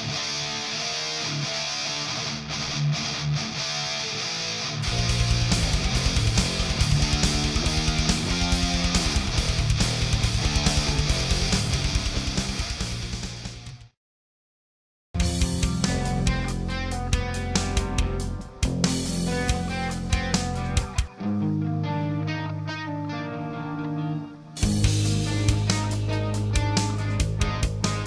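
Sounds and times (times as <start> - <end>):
distorted electric guitar riff: 0.0 - 13.9, 15.2 - 28.0
fast pulsing backing beat: 4.9 - 13.4, 24.6 - 28.0.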